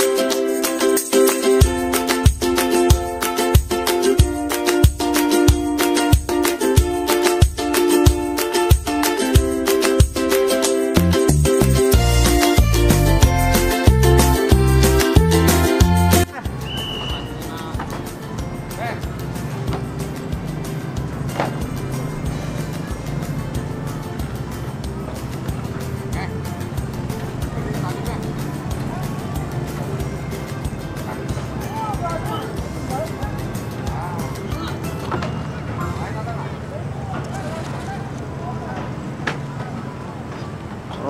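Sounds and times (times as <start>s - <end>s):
background music: 0.0s - 36.8s
faint distant voices: 24.0s - 41.0s.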